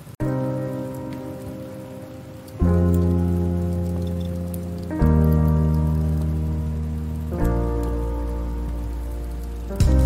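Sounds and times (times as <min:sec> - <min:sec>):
slow sustained chords: 0:00.2 - 0:10.0.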